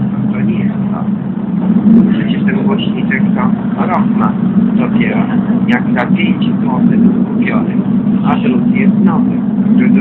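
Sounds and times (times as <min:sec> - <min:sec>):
bus engine humming: 0:00.0 - 0:10.0.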